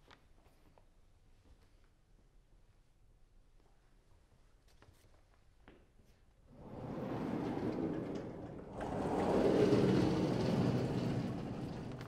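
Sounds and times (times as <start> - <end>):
chalkboard panels rolling on tracks: 6.5 - 12.0.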